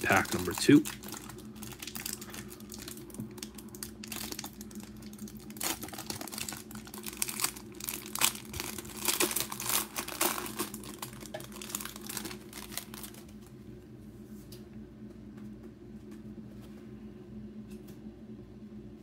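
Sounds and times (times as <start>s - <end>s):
plastic wrapper tearing and crinkling: 0.0s - 13.4s.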